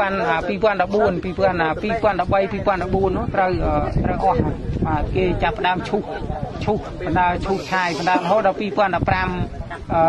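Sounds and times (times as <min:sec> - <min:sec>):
man speaking: 0:07.1 - 0:09.1
short hiss: 0:07.4 - 0:08.4.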